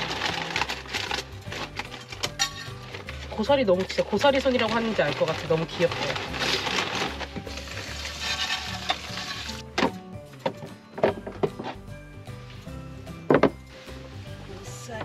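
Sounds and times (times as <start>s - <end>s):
dry fern crackling against plastic bag: 0.0s - 9.6s
background music: 0.0s - 15.0s.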